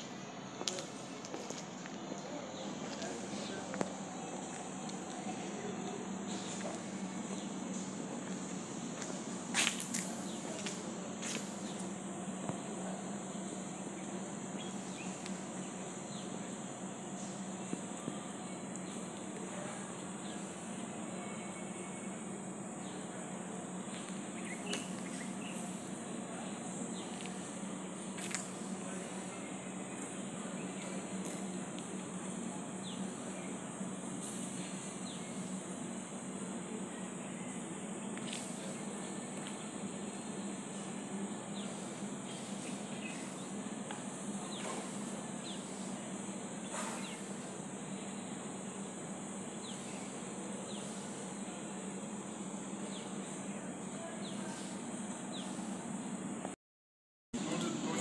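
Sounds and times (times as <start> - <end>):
even hiss: 0.0 - 56.4.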